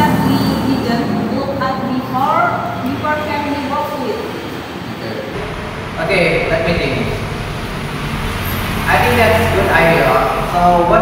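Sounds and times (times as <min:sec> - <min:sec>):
road traffic rumble: 0:00.0 - 0:11.0
man speaking: 0:05.0 - 0:07.3.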